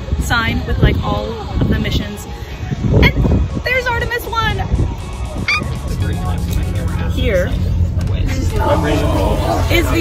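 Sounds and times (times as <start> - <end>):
bus engine drone: 5.8 - 10.0.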